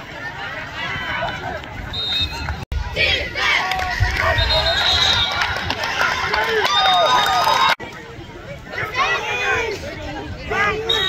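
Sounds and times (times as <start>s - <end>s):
spectators shouting and cheering: 0.0s - 11.0s.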